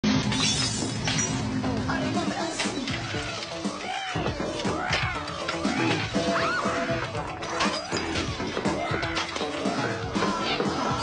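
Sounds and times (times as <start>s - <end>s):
glass shattering and clattering: 0.1s - 1.5s, 7.3s - 9.7s.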